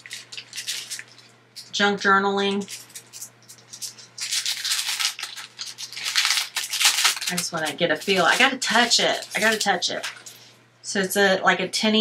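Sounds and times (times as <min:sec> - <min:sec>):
plastic packaging crinkling: 0:00.0 - 0:10.5.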